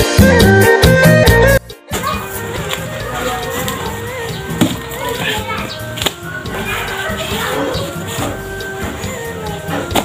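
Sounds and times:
background music with melody: 0.0s - 10.0s.

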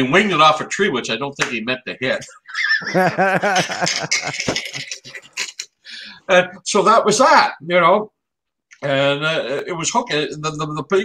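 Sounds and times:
men laughing: 2.3s - 6.1s.

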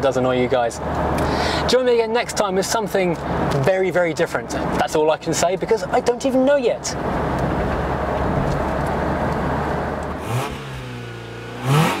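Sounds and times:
car engine and road noise: 0.0s - 12.0s
engine revving: 8.8s - 12.0s.

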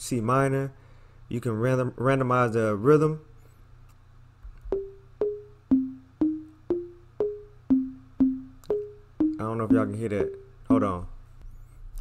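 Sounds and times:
short synth notes melody: 4.7s - 10.9s.

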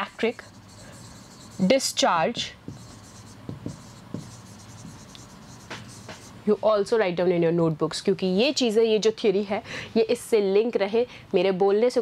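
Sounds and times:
writing tip scratching on board: 0.0s - 6.4s.

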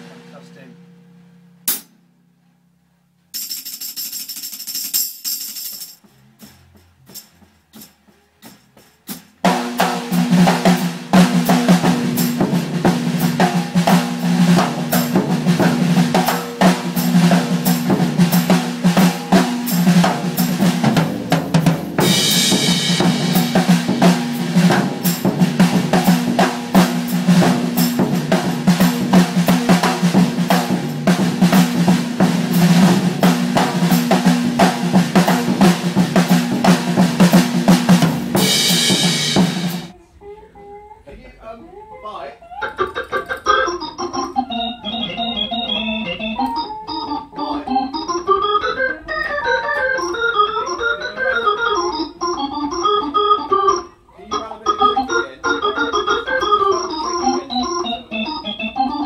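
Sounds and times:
drum kit played with sticks: 0.0s - 40.0s, 42.8s - 59.0s
cymbal crashes: 9.5s - 39.9s.

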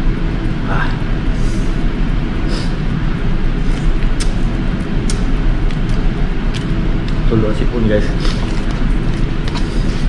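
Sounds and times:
steady rumbling machinery: 0.0s - 10.0s
sharp eating clicks: 3.7s - 4.4s, 5.0s - 7.3s.

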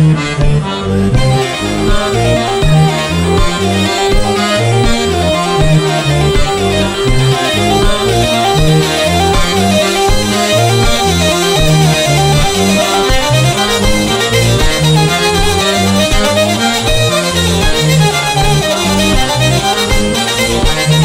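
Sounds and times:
button accordion: 0.0s - 21.0s
hurdy-gurdy melody: 0.0s - 21.0s.

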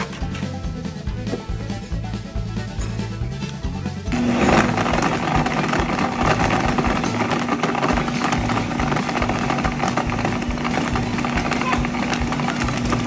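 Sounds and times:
blender motor running: 4.1s - 13.0s.

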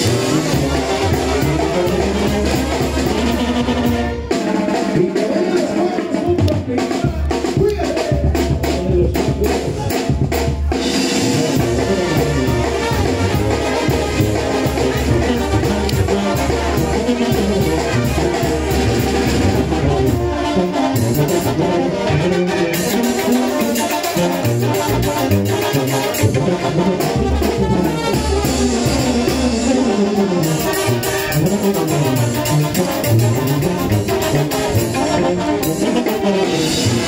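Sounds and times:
brass band music: 0.0s - 37.0s
steady drums: 0.0s - 37.0s.

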